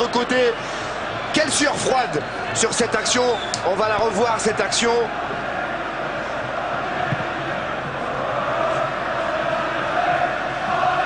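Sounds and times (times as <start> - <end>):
stadium crowd chanting: 0.9 - 11.0.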